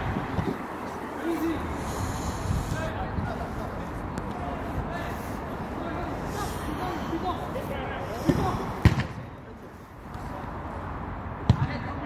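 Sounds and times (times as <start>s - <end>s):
football kick thud: 8.3s - 9.2s.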